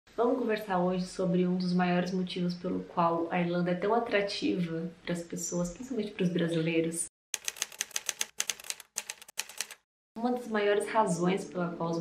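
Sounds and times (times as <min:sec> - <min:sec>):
typewriter keys clacking: 0:07.4 - 0:09.8.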